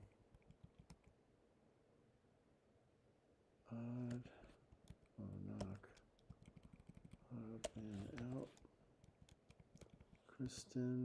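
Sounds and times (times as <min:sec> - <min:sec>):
keyboard typing clicks: 0:04.8 - 0:10.2.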